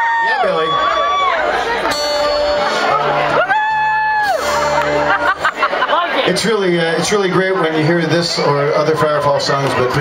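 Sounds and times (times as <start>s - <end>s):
live band sustained notes: 0.0s - 10.0s
low bass notes: 0.6s - 10.0s.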